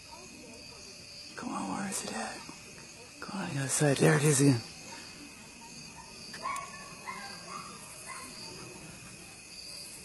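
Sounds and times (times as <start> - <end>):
insects chirring: 0.0 - 10.0.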